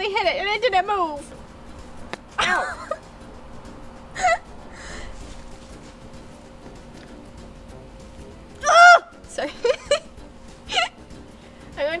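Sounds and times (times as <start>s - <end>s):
woman's voice: 0.0s - 1.4s, 9.3s - 9.8s, 11.8s - 12.0s
woman squealing with laughter: 4.2s - 4.4s, 8.6s - 9.1s.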